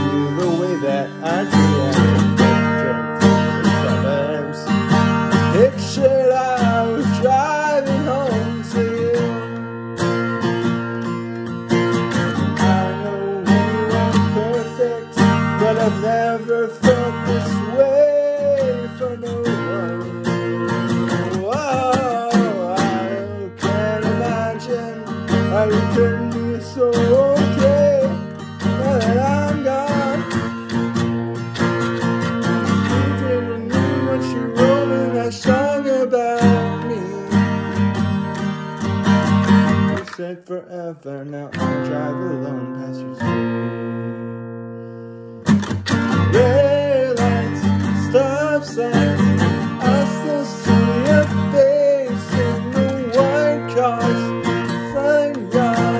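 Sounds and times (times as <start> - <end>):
man singing: 0.0 - 44.5, 45.4 - 55.9
strummed acoustic guitar: 0.0 - 55.9.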